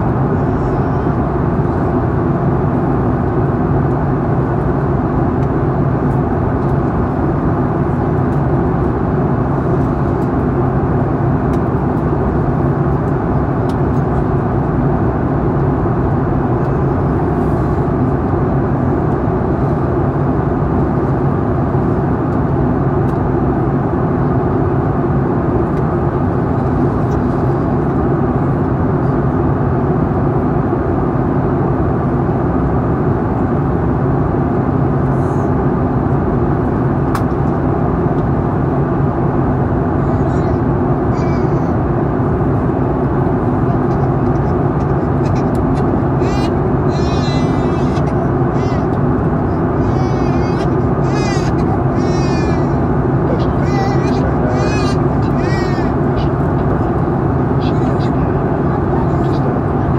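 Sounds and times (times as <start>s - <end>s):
jet engine drone in cabin: 0.0s - 59.9s.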